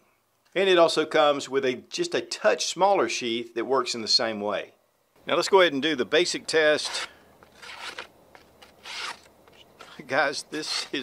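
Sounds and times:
hatchet slicing paper: 6.8 - 11.0.

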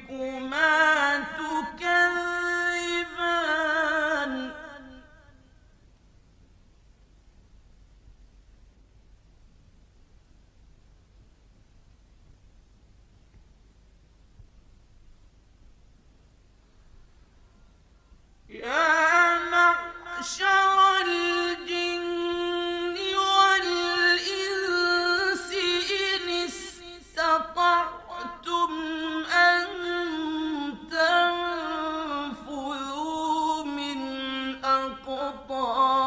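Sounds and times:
person chanting melodically: 0.0 - 5.7, 18.5 - 36.0
faint low hum and hiss: 0.0 - 36.0.

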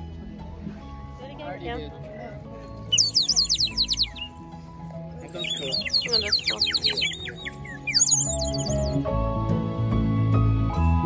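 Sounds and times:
toy bird whistle warbling: 2.9 - 4.4, 5.4 - 9.0.

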